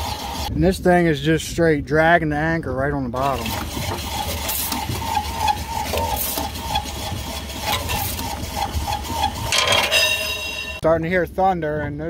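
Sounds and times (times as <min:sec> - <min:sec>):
water splashing: 0:03.2 - 0:09.6.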